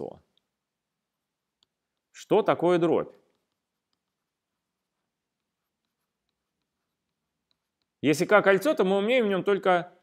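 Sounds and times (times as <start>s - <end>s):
stylus ticking on drawing tablet: 3.3s - 8.0s.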